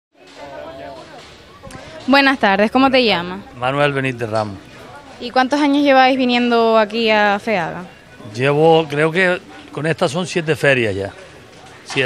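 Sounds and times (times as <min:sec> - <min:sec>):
faint voices talking: 0:00.2 - 0:12.0.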